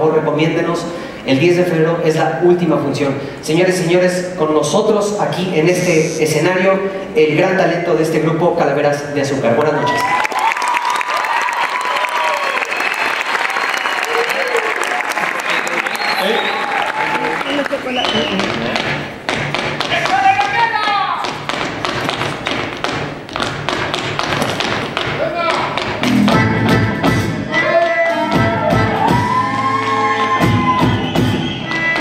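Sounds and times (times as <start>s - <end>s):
audience applause and cheering: 9.6s - 21.3s, 27.1s - 32.0s
regional band playing: 26.0s - 29.8s.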